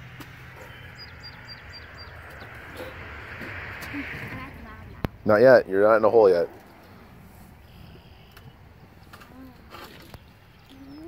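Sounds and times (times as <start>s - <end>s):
small bird chirping: 0.6s - 3.0s, 10.2s - 11.0s.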